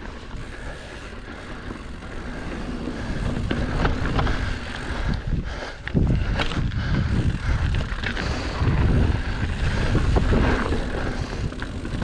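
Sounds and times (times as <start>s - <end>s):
bike clicks and rattles: 0.0s - 12.0s
bike tyre noise on dirt: 0.0s - 12.0s
wind rumbling on microphone: 0.0s - 12.0s.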